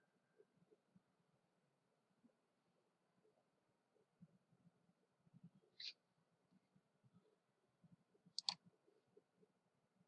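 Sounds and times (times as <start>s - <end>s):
computer mouse clicks: 8.4s - 8.7s.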